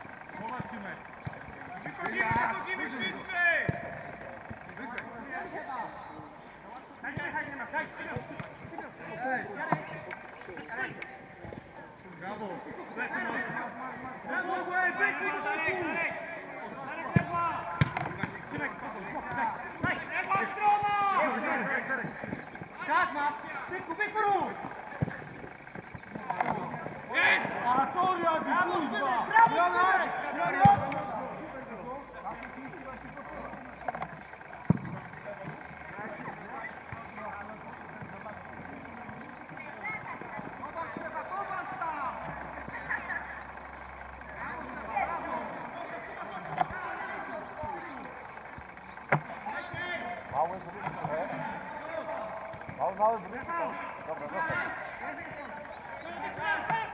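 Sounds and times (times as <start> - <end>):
players shouting: 0.0 - 56.9
ball being kicked: 17.1 - 20.0, 30.6 - 31.0.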